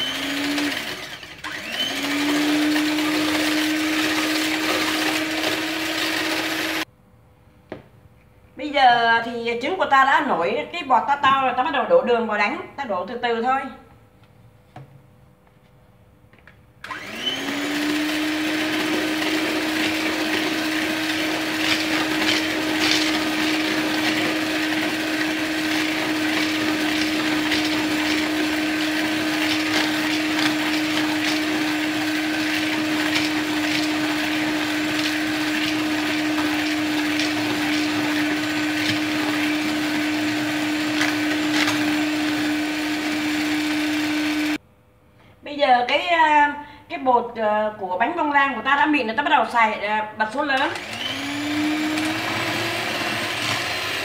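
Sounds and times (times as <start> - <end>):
electric hand mixer hum: 0.0 - 6.9, 16.8 - 44.6, 50.6 - 54.0.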